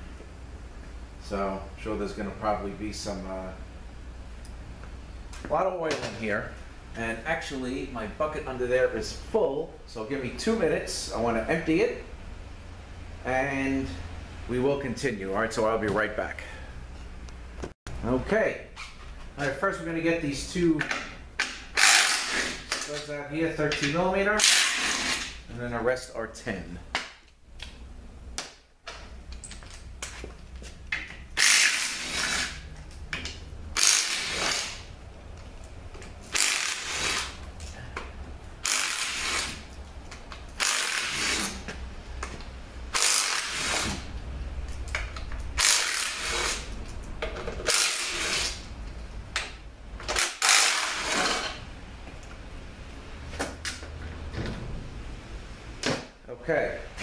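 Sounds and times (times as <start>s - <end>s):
steady low hum: 0.0s - 57.0s
ratchet spinning bolts: 31.4s - 32.6s, 33.8s - 34.8s, 36.3s - 37.4s, 38.6s - 39.6s, 40.6s - 41.6s, 42.9s - 44.0s, 45.6s - 46.7s, 47.6s - 48.6s, 50.1s - 51.6s.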